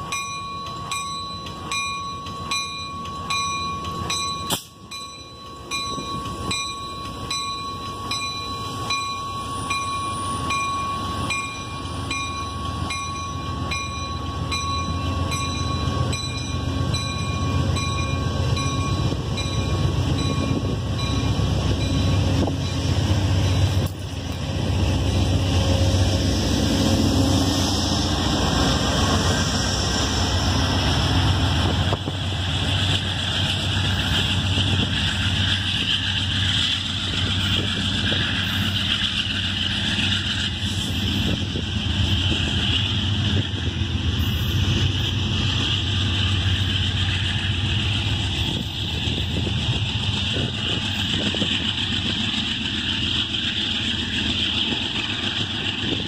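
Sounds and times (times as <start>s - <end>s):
crossing bell dinging: 0.0s - 26.2s
train rumbling past: 0.0s - 56.0s.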